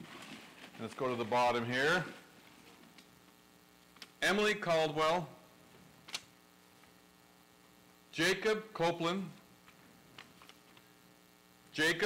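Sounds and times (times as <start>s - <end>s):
faint electrical mains hum: 0.0s - 12.0s.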